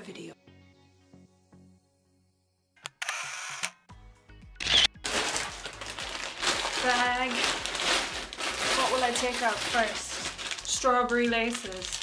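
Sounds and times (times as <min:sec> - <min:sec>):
camera shutter burst: 0:04.6 - 0:04.9.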